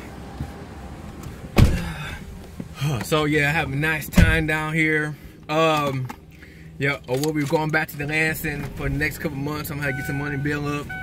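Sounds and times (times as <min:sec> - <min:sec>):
car door shutting: 0:00.4 - 0:03.2, 0:04.1 - 0:04.6.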